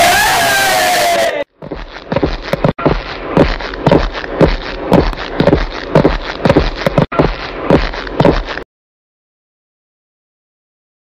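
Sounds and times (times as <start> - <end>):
footsteps on paving: 1.5 - 8.6.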